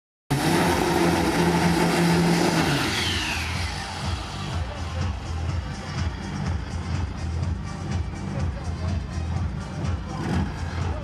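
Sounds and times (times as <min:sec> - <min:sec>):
falling whine: 0:00.3 - 0:04.8
racing car engine: 0:00.3 - 0:11.0.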